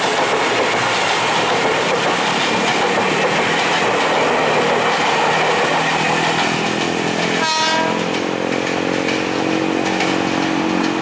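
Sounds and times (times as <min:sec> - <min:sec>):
wheels clicking over rail joints: 0:00.0 - 0:11.0.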